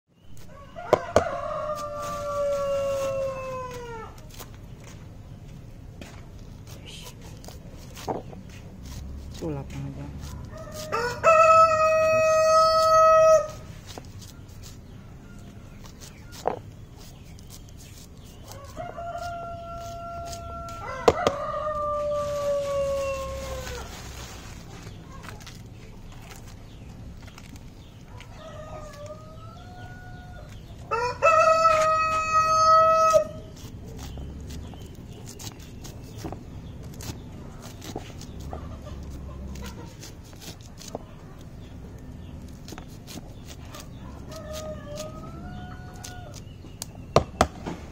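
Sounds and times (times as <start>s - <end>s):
rooster crowing: 0.5s - 4.1s, 10.5s - 13.6s, 18.5s - 23.9s, 28.4s - 33.4s
knife scraping corn kernels: 1.2s - 4.6s, 6.6s - 29.4s, 31.3s - 46.9s.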